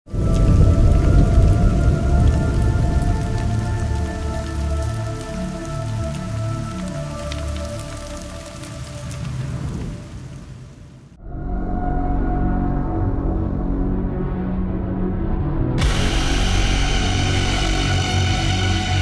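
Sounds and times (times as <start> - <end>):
deep rumble with pulsing bass: 0.1 - 7.4, 11.2 - 19.0
crackling rain-like hiss: 0.1 - 11.2, 15.8 - 19.0.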